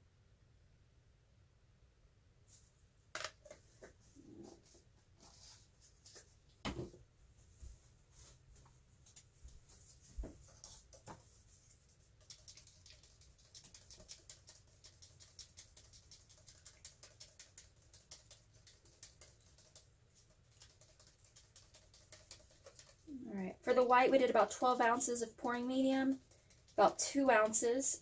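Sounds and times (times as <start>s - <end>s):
stick stirring paint in cup: 9.2s - 27.6s.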